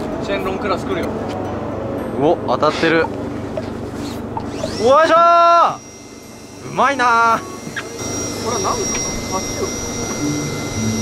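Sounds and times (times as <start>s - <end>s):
high-pitched whine: 0.0s - 11.0s
boat engine humming: 5.6s - 11.0s.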